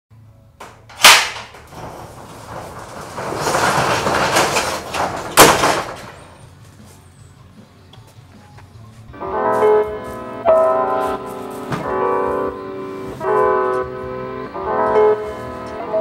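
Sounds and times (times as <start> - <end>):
sharp bangs: 0.6 - 6.6.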